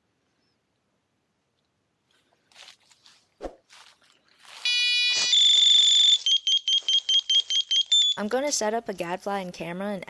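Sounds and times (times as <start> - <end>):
electronic siren: 4.6 - 8.2.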